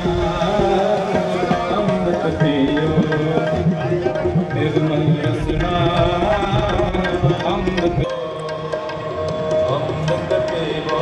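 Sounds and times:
sustained devotional melody: 0.0s - 11.0s
tabla drumming: 0.0s - 11.0s.

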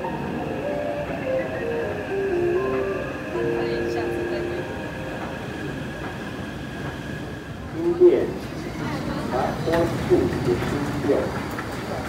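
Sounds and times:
metro train rumble: 0.0s - 12.0s.

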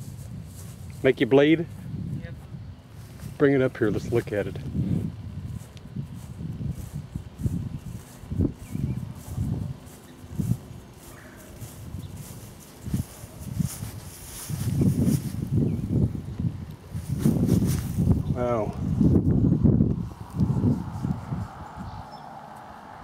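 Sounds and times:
footsteps on grass: 0.0s - 18.2s.

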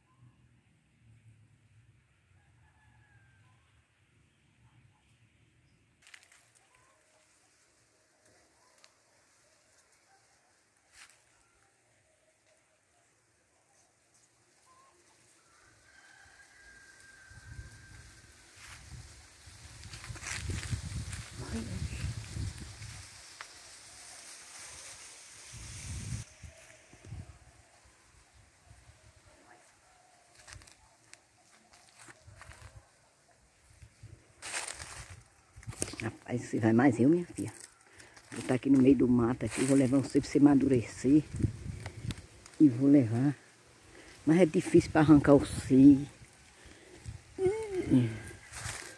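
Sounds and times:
rooster crowing: 2.4s - 3.8s, 15.3s - 18.8s, 47.8s - 48.9s
rustling of dry brush: 6.0s - 11.4s, 13.8s - 28.6s, 29.6s - 33.0s, 33.8s - 48.9s.

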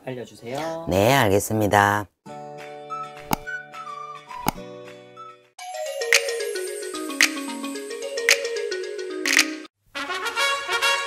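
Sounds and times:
music with falling notes: 2.9s - 9.7s
click sound effects: 3.2s - 3.5s, 4.4s - 4.6s.

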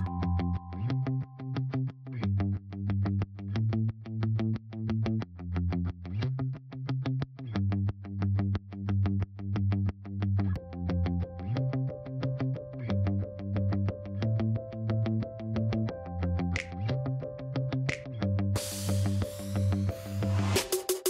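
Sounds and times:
background music with repeated notes: 0.0s - 2.3s, 10.6s - 21.0s.

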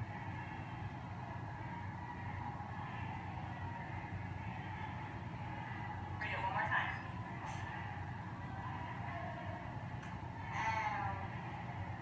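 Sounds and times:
faint drawn-out voice: 0.0s - 12.0s.

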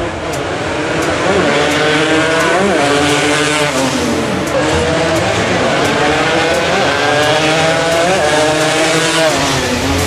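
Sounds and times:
racing motorcycle passing at high revs: 0.0s - 10.0s.

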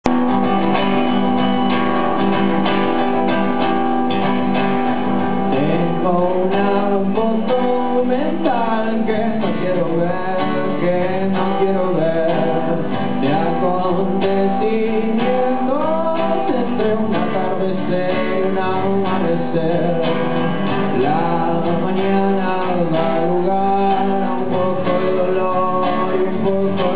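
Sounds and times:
acoustic guitar strumming: 0.0s - 26.9s.

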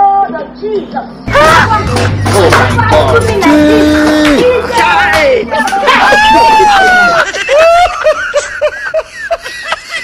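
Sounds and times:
high-pitched chuckling laughter: 7.0s - 10.0s.

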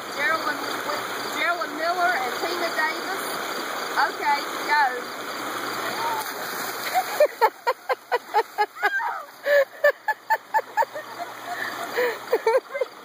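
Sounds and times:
water splashing from buckets: 0.0s - 13.0s
woman crying out: 8.7s - 9.6s.

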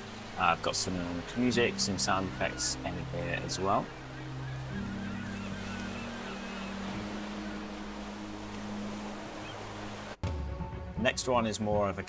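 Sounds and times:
seagulls calling: 0.0s - 10.2s
ocean surf: 0.0s - 12.0s.

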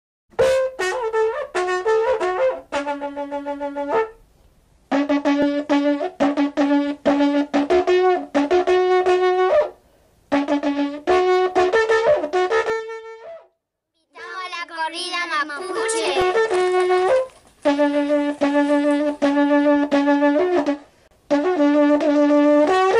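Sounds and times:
brass melody: 0.4s - 4.2s, 4.9s - 13.5s, 15.6s - 22.9s.

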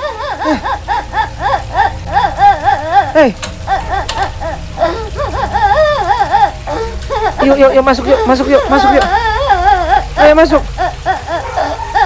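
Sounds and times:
child crying: 0.0s - 12.0s.

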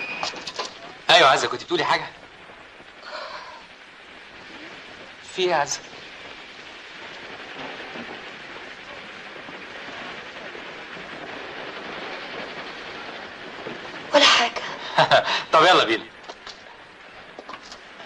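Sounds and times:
steady rushing noise: 0.0s - 18.0s.

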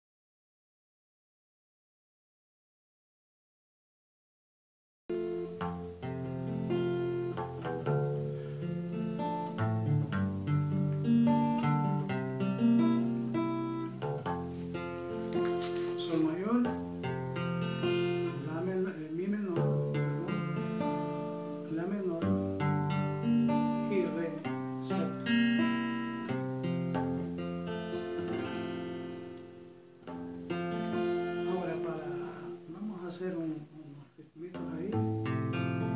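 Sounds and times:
classical guitar strumming chords: 5.1s - 33.8s, 34.4s - 35.9s.

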